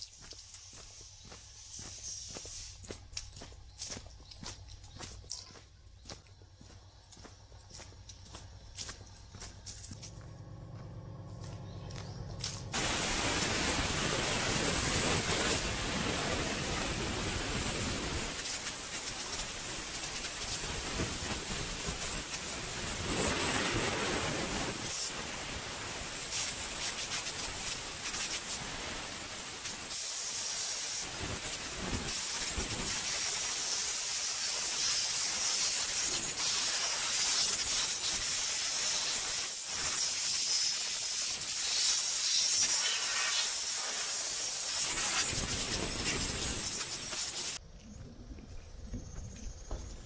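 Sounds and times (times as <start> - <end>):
compressed air hissing: 0.3 - 3.0, 12.7 - 47.6.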